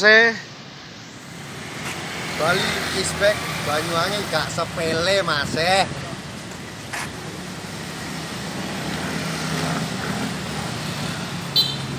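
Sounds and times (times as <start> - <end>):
scooters and cars passing: 0.0 - 11.9.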